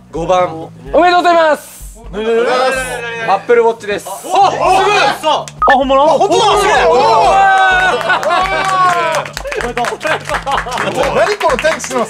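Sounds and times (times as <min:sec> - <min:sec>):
low background music: 0:00.0 - 0:12.0
two-note electronic beep: 0:05.6 - 0:06.1.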